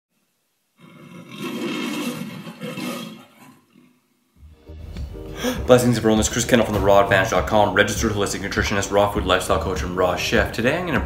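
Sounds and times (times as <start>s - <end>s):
lion-like roar: 0.8s - 4.0s.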